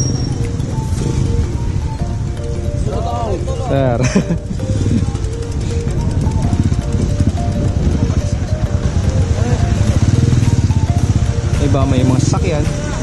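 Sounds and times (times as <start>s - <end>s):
background music with melody: 0.0s - 13.0s
vehicle engine running: 0.0s - 13.0s.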